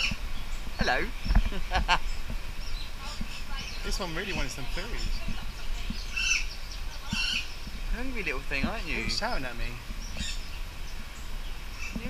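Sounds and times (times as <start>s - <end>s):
bird giving high wavering calls: 0.0s - 7.9s.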